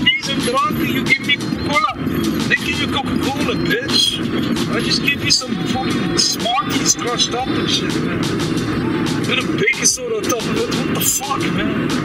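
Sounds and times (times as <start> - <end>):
steady low rumble: 0.0 - 12.0
voices talking indistinctly: 0.0 - 12.0.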